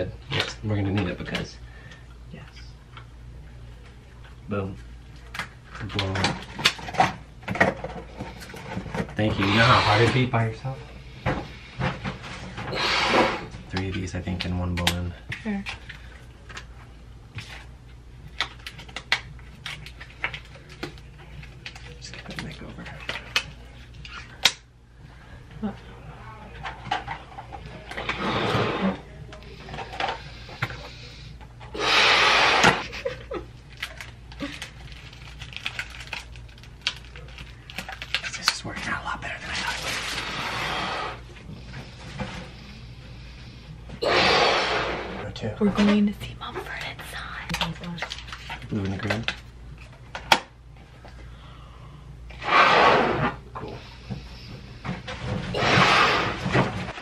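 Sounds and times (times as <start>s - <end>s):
breaths blowing up balloon: 9.3s - 10.3s, 12.6s - 13.6s, 27.9s - 29.1s, 31.7s - 32.9s, 40.2s - 42.3s, 43.9s - 45.2s, 52.3s - 57.0s.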